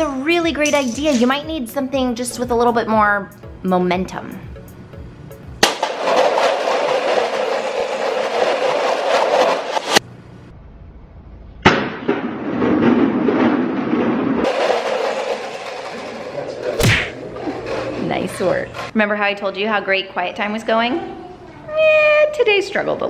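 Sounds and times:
plastic cups clattering on tile floor: 0:05.6 - 0:09.9, 0:14.4 - 0:18.9.

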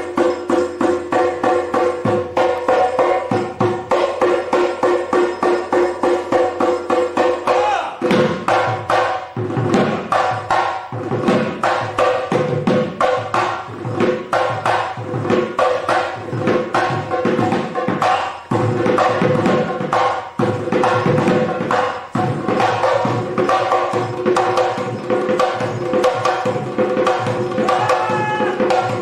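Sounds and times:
barrel drums played fast: 0:00.0 - 0:29.0.

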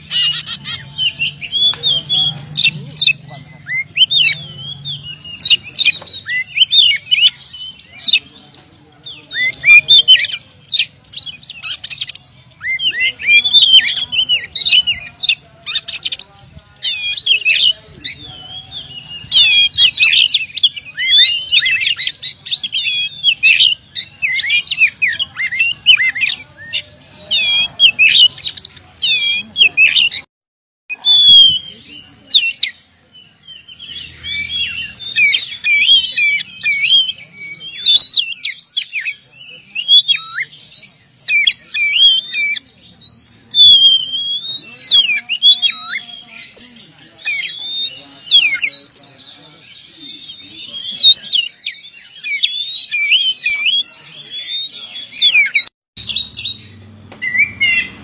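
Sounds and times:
bird singing whistles and chirps: 0:00.0 - 0:30.3, 0:30.9 - 0:58.0.

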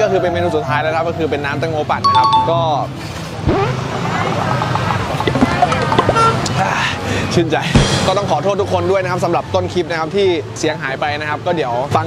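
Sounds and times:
music: 0:00.0 - 0:03.0, 0:07.1 - 0:12.0
cars passing: 0:02.0 - 0:07.5
motorcycles passing: 0:02.6 - 0:07.1.

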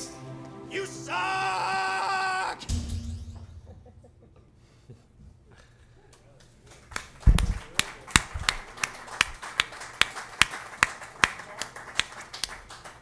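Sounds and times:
small audience applauding: 0:06.1 - 0:13.0.

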